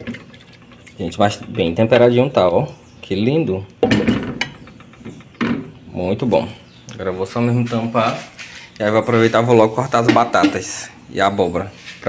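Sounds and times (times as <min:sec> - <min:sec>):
spatula clicking and scraping pot: 0:00.0 - 0:02.6.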